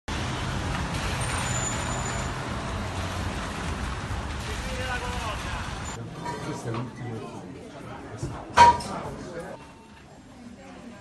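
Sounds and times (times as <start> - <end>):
car engines driving past: 0.1 - 6.0
tyres on wet road: 0.1 - 6.0.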